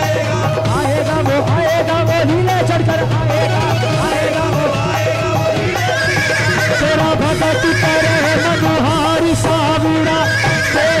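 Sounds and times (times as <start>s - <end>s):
voices singing devotional song: 0.0s - 11.0s.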